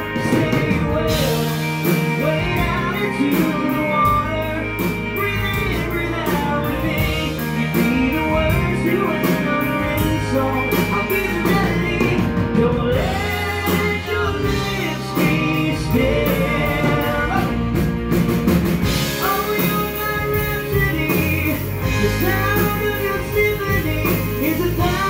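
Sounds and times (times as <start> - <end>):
man singing lead vocal: 0.0 - 18.2, 18.9 - 25.0
live rock band playing: 0.0 - 25.0.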